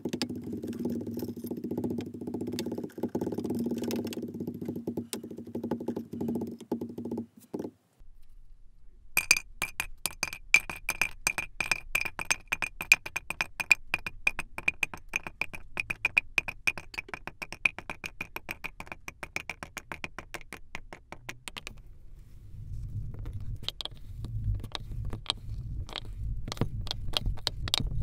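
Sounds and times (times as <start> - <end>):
sand cubes clicking into plastic box: 9.2 - 21.8.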